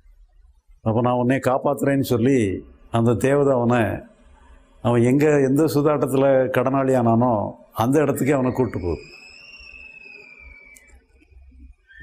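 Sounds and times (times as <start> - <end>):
high-pitched whistling tone: 7.8 - 12.0.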